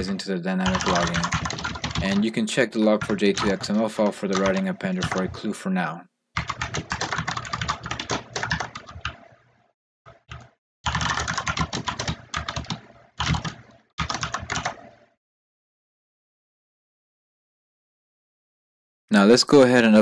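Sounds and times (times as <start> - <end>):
typing on computer keyboard: 0.0 - 5.5, 6.4 - 9.3, 10.1 - 15.0.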